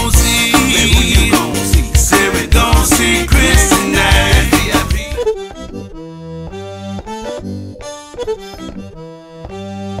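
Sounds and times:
accordion chords: 0:00.0 - 0:10.0
bass notes: 0:00.0 - 0:10.0.

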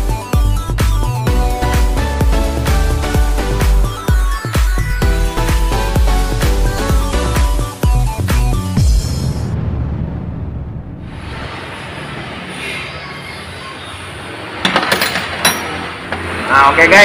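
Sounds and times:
background music: 0:00.0 - 0:09.7
workshop room noise: 0:11.1 - 0:17.0
wrench clinking on metal: 0:14.6 - 0:15.8
man talking: 0:16.5 - 0:17.0.

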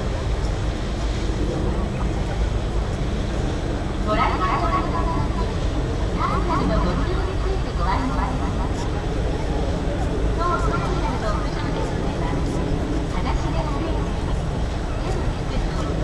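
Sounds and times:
low outdoor rumble: 0:00.0 - 0:16.0
people talking: 0:01.6 - 0:16.0.

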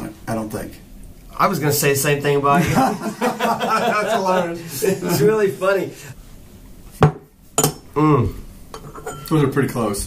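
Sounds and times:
glass clinking on hard surface: 0:07.0 - 0:07.8, 0:08.7 - 0:09.3.

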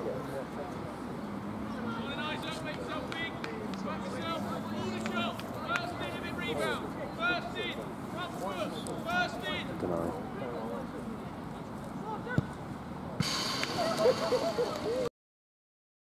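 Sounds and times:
voices calling out: 0:00.0 - 0:11.3, 0:13.3 - 0:15.1
steady hiss: 0:13.2 - 0:15.1.

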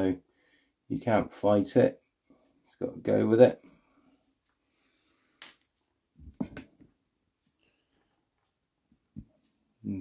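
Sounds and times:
knocks and rustles: 0:06.2 - 0:07.0.

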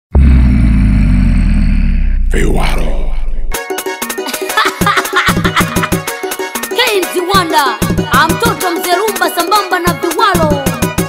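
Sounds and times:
deep rumbling drone: 0:00.1 - 0:03.6.

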